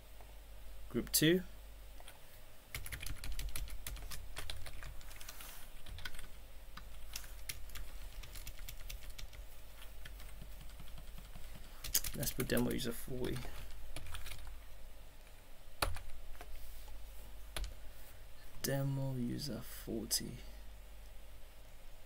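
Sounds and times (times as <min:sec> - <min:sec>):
typing on keyboard: 0:02.7 - 0:14.5, 0:15.8 - 0:16.1.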